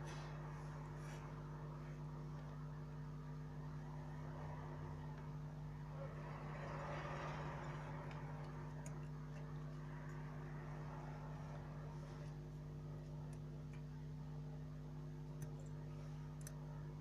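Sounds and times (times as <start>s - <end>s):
electrical hum with low tones: 0.0s - 17.0s
faint tweezer clicks: 15.3s - 16.6s.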